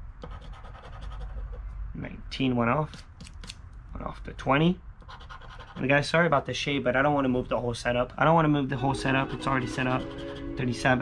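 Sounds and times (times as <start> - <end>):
coin scraping scratch-off ticket: 9.0 - 10.8.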